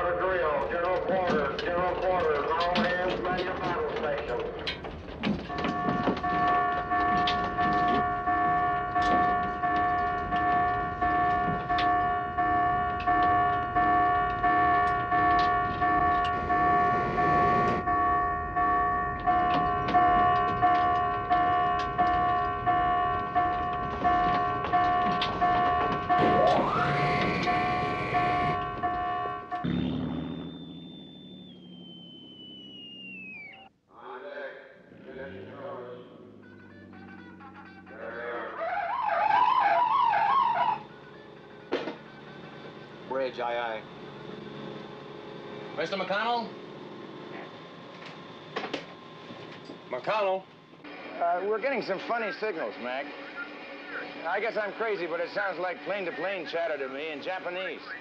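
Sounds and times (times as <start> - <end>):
footsteps on steel decks: 0.0 - 29.8
pulsing alarm tone: 5.4 - 33.7, 36.1 - 49.2
high tone sliding downward: 5.5 - 33.7, 35.8 - 46.6.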